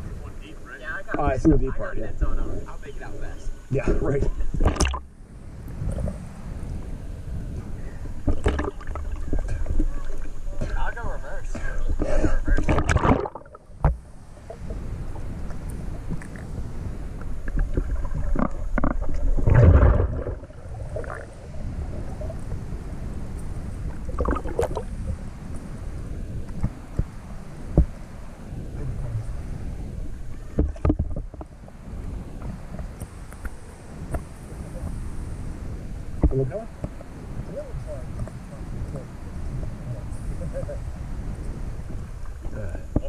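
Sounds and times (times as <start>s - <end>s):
underwater rumble of moving water: 0.0s - 43.0s
underwater knocks and clicks: 4.6s - 5.0s, 8.2s - 10.8s, 12.0s - 14.0s, 17.2s - 21.3s, 23.9s - 24.8s, 30.5s - 31.5s, 36.2s - 37.0s, 42.2s - 43.0s.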